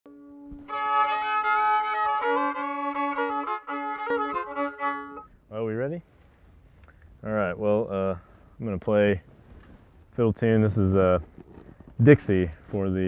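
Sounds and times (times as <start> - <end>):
solo fiddle playing: 0.1 - 5.4.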